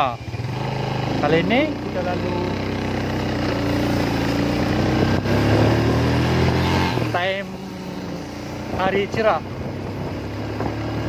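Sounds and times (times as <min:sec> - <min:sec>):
motorcycle engine running: 0:00.0 - 0:11.0
wind and road noise: 0:00.0 - 0:11.0.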